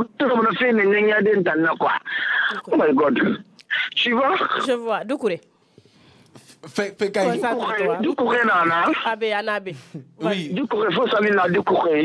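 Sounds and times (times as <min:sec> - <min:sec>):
person talking: 0:06.7 - 0:11.9.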